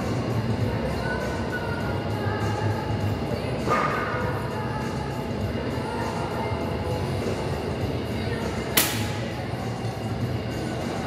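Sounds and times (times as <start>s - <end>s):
faint music: 0.0s - 11.0s
gym background rumble: 0.0s - 11.0s
sharp clack: 8.8s - 9.2s.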